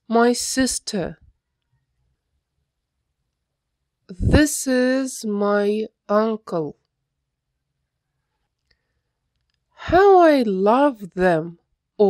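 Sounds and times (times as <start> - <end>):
person reading aloud: 0.0 - 1.2, 4.1 - 6.8, 9.8 - 11.6.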